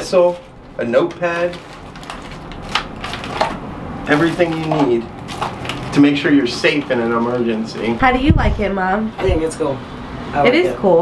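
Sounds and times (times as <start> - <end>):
plastic packets crinkling: 0.1 - 8.0
sharp plastic crackles: 0.2 - 8.0.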